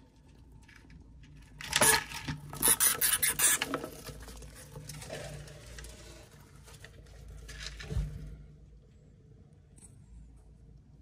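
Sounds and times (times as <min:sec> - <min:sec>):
hamsters scuffling: 0:02.5 - 0:08.4.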